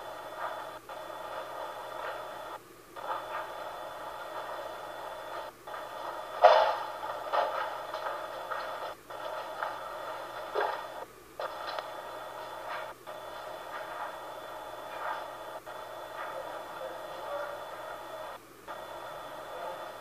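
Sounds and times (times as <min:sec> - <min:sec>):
baby monitor speaker hiss: 0:00.0 - 0:20.0.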